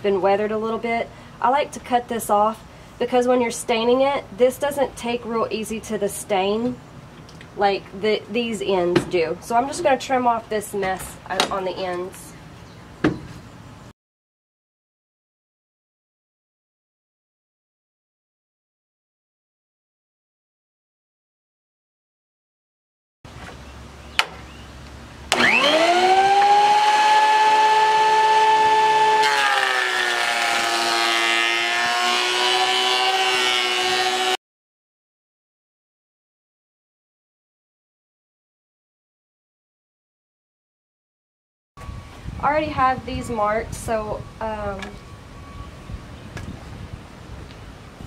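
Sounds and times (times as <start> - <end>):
board cutting noise: 25.3 - 34.4
planer motor whine: 25.3 - 34.4.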